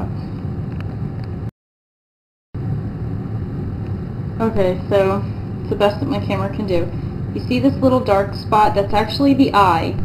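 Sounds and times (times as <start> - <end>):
low rumbling background noise: 0.0 - 1.5, 2.6 - 10.0.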